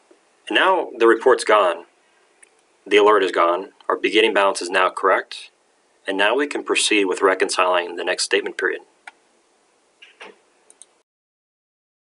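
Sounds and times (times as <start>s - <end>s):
quiet hiss: 0.0s - 11.0s.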